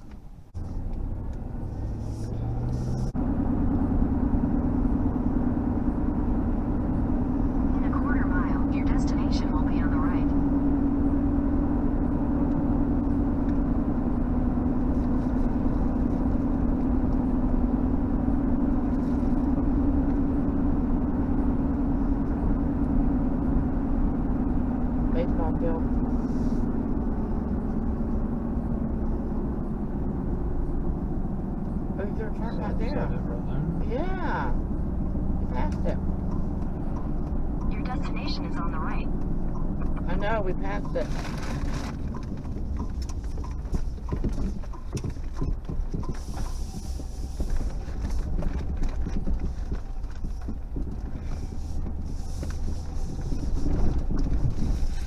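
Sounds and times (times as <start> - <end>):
car engine and tyre noise: 0.0 - 55.0.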